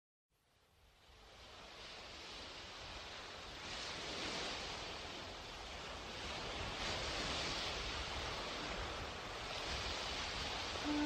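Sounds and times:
waves washing in: 0:00.5 - 0:11.0.

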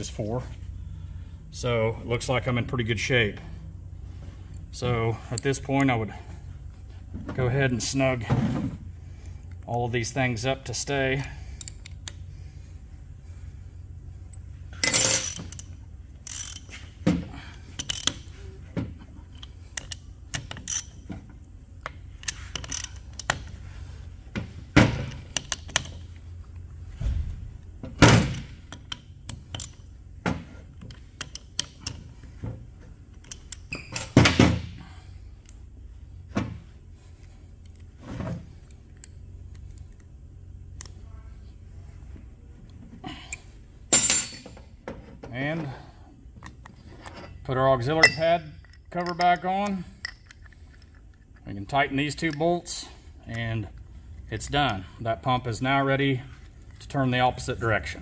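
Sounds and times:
socket ratchet clicking: 0:17.8 - 0:18.2, 0:22.2 - 0:23.5, 0:28.7 - 0:29.8, 0:30.8 - 0:32.0, 0:33.2 - 0:33.8.

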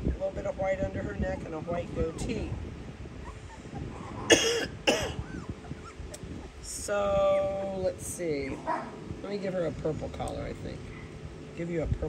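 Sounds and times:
woman coughing: 0:04.3 - 0:05.3.

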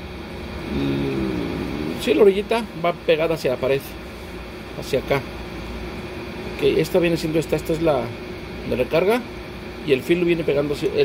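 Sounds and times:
man humming hesitantly: 0:00.6 - 0:02.2.

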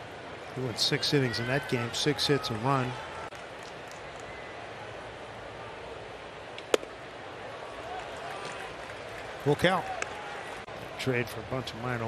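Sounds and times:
ballpark crowd noise: 0:00.0 - 0:12.0.

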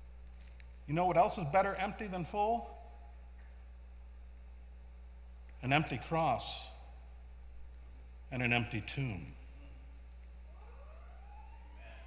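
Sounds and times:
electrical hum: 0:00.0 - 0:12.0
faint siren wailing: 0:10.5 - 0:12.0.

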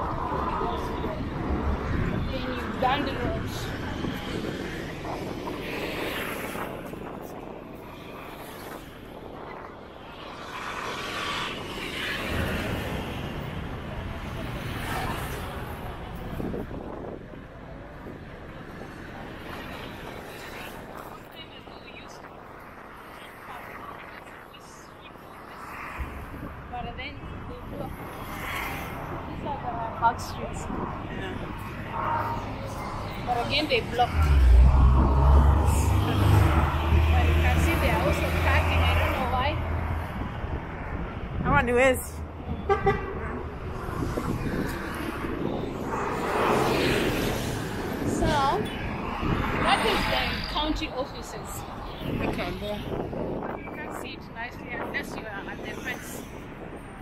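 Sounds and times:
people's voices: 0:00.0 - 0:09.9, 0:11.8 - 0:42.5, 0:43.2 - 0:56.6
cars and motorcycles passing: 0:00.0 - 0:57.0.

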